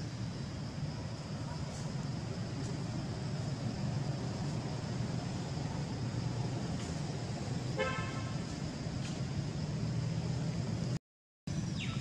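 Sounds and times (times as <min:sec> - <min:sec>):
steady low rumble: 0:00.0 - 0:11.7.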